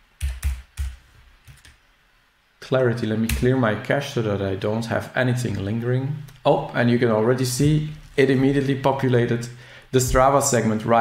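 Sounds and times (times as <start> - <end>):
keyboard typing: 0.2 - 1.8.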